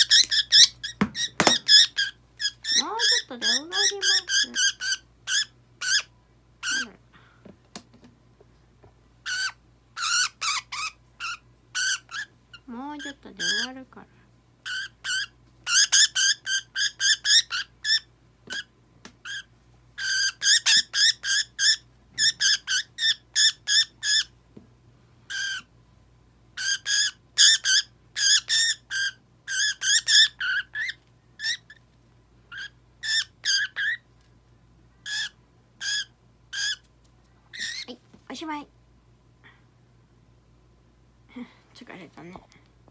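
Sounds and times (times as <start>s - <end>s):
budgerigar squawking: 0.0s - 6.9s, 9.2s - 12.3s, 14.7s - 18.1s, 19.3s - 24.3s, 26.6s - 31.7s, 32.5s - 34.0s, 35.0s - 36.8s.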